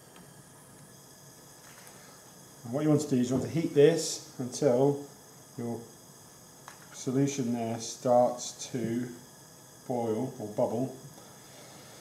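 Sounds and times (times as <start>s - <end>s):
gas burner hissing: 0.0s - 12.0s.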